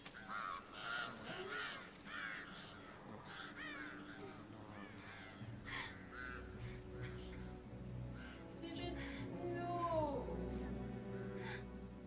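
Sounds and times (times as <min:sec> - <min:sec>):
crows cawing: 0:00.0 - 0:09.2
low held music: 0:02.9 - 0:12.0.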